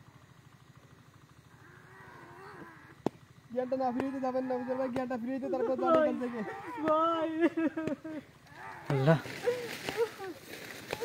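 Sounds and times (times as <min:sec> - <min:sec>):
faint wavering drawn-out call: 0:01.4 - 0:05.0.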